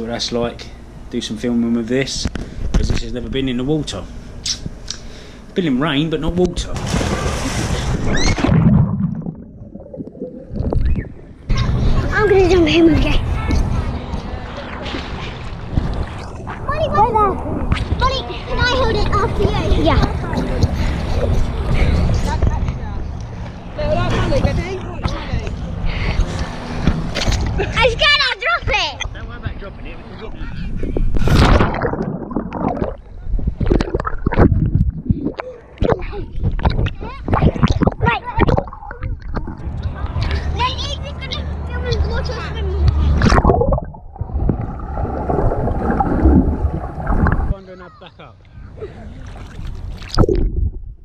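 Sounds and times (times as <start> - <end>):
rumble of water movement: 5.8 - 24.8, 30.4 - 40.8, 41.8 - 47.6, 48.5 - 51.0
splash into swimming pool: 6.7 - 9.2
muffled underwater gurgling: 8.0 - 11.5, 31.0 - 39.7
child's voice: 11.5 - 14.1, 16.6 - 20.6, 27.7 - 29.1, 35.9 - 38.7, 40.0 - 43.2.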